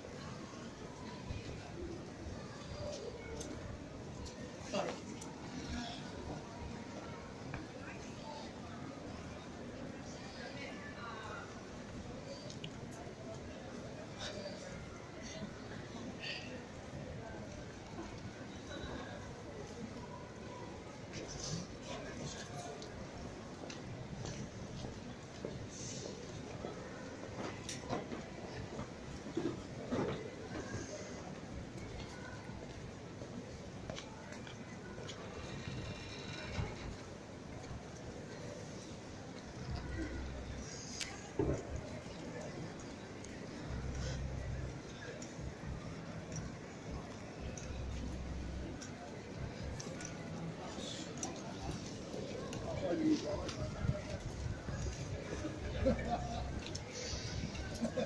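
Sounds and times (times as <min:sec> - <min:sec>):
indistinct voices of passers-by: 0:00.0 - 0:58.0
low street rumble: 0:00.0 - 0:58.0
clicks and knocks from passers-by: 0:40.7 - 0:44.2.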